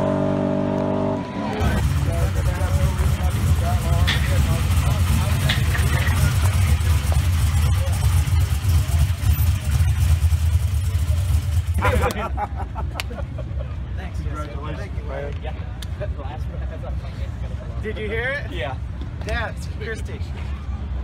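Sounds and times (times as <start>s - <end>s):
voices: 1.2s - 21.0s
race car engine idling: 1.5s - 12.2s.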